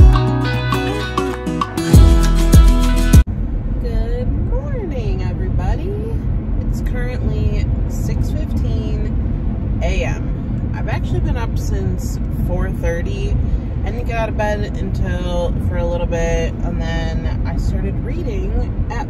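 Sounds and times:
car road and engine rumble: 0:02.9 - 0:19.0
woman talking: 0:03.8 - 0:09.2, 0:09.8 - 0:19.0.

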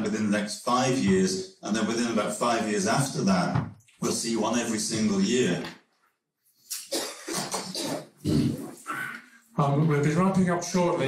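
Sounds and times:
person coughing harshly: 0:06.8 - 0:08.8.

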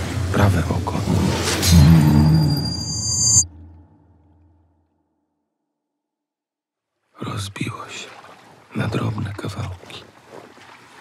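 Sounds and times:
low rumble: 0:00.0 - 0:05.2
deep pitched roar: 0:01.1 - 0:04.9
high ringing tone: 0:01.8 - 0:04.8.

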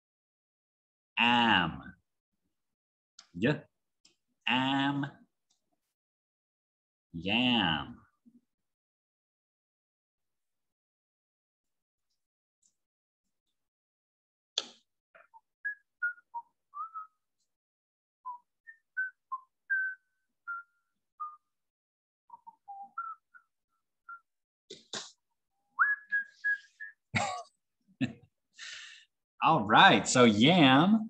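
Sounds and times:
person whistling short notes: 0:25.8 - 0:27.1.

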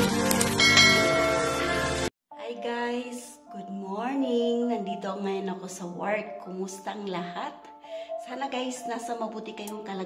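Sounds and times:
bell-like chime over chord: 0:00.5 - 0:02.1.

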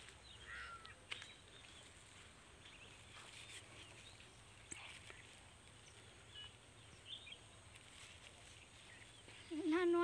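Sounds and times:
faint bird chirps: 0:00.2 - 0:10.0.

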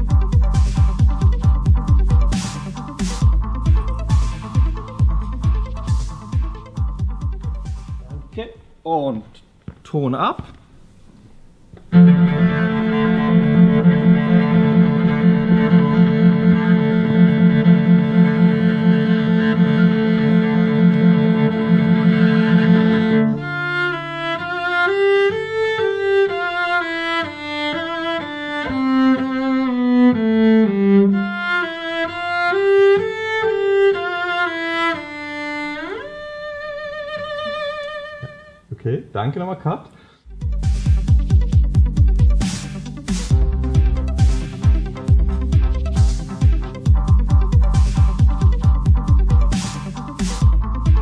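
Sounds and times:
solo cello bowed: 0:11.9 - 0:38.7.

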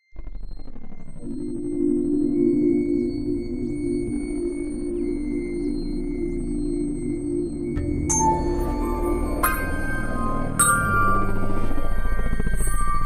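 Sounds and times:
low drone: 0:00.2 - 0:13.0
thin high held tones: 0:06.1 - 0:13.0.

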